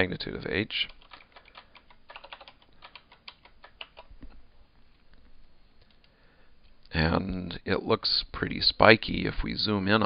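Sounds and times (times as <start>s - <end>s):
typing on computer keyboard: 0.8s - 4.1s.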